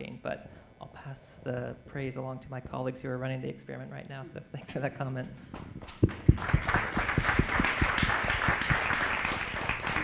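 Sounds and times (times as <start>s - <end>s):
audience applauding: 6.1s - 10.0s.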